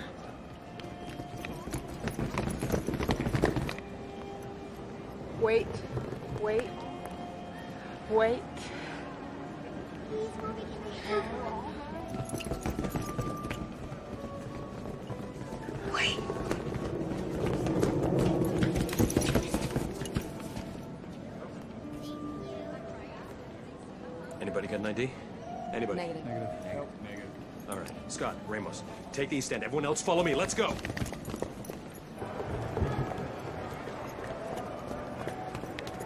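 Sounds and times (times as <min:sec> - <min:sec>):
people running on hard floor: 0:01.0 - 0:03.8, 0:12.1 - 0:20.8, 0:30.4 - 0:36.0.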